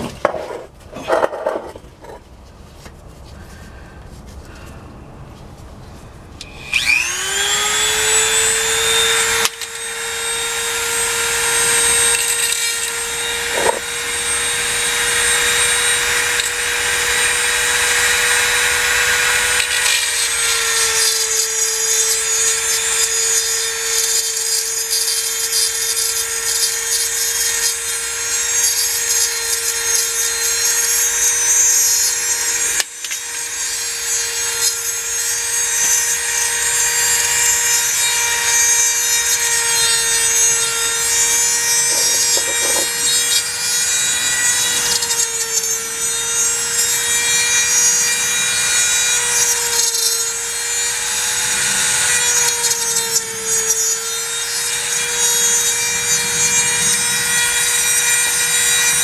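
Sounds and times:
rotary tool grinding metal: 0.0s - 2.2s, 6.4s - 59.0s.

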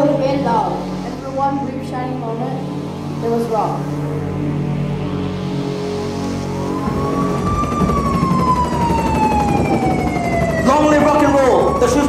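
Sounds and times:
low rumble: 0.0s - 11.6s
siren-like sliding tone: 0.0s - 12.0s.

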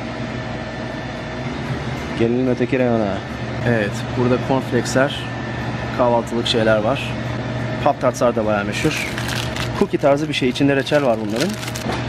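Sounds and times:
air conditioning hum and hiss: 0.0s - 12.0s.

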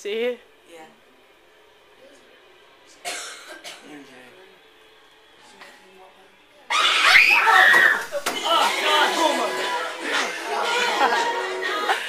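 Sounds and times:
shouting: 6.7s - 9.2s
teenagers screaming: 6.7s - 9.2s
excited chatter: 6.7s - 12.0s
laughter: 10.7s - 12.0s.

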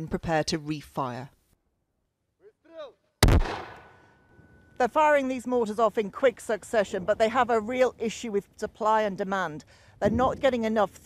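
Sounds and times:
mortar firing shot: 3.2s - 4.1s.

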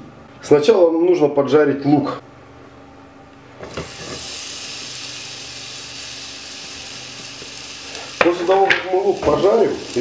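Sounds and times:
onion sizzling in oil: 3.6s - 10.0s.

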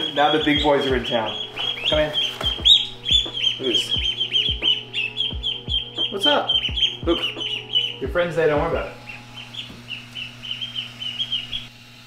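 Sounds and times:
chicks peeping: 0.0s - 11.7s.

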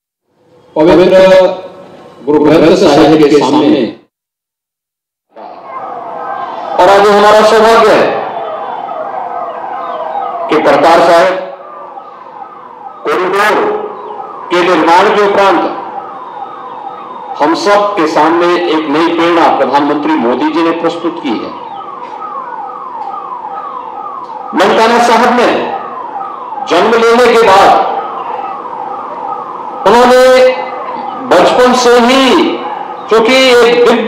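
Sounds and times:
man speaking over loudspeaker: 0.8s - 4.1s, 6.7s - 8.4s, 10.4s - 11.6s, 13.0s - 15.9s, 17.3s - 21.7s, 24.4s - 25.9s, 26.6s - 28.1s, 29.8s - 34.0s
loudspeaker echo of voice: 2.4s - 4.0s, 6.6s - 8.4s, 10.4s - 11.6s, 13.0s - 15.9s, 17.4s - 21.6s, 24.5s - 25.9s, 26.7s - 28.1s, 29.8s - 34.0s
electronic siren sweeping down: 5.3s - 34.0s.

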